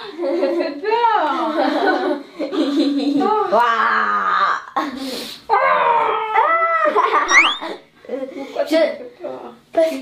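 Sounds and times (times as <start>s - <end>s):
girl and woman shrieking: 6.0s - 7.8s
girl and woman laughing: 6.9s - 7.8s.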